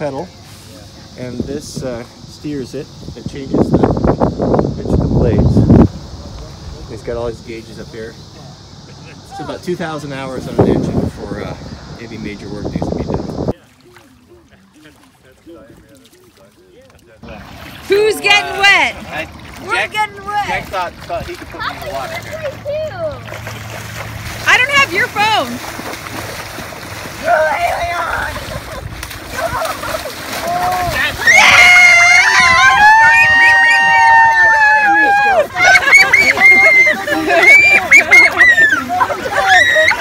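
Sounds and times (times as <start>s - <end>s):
people wading in shallow water: 0.0s - 40.0s
people shouting faintly: 27.1s - 40.0s
long high-pitched yell: 30.5s - 40.0s.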